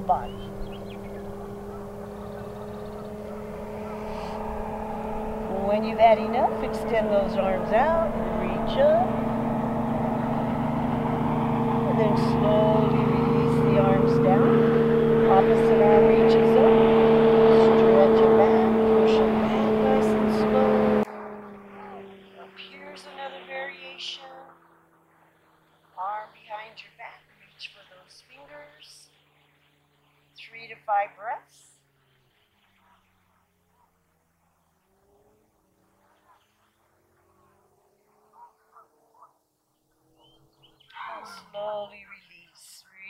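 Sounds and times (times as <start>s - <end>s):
faint animal calls: 0.0s - 5.2s, 36.0s - 39.4s
loud engine hum: 0.0s - 30.8s, 31.8s - 39.2s
quiet outdoor sound: 0.0s - 43.0s.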